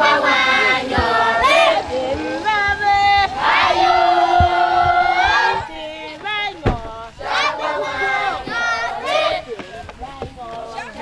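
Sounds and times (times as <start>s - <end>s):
crowd singing and shouting: 0.0s - 11.0s.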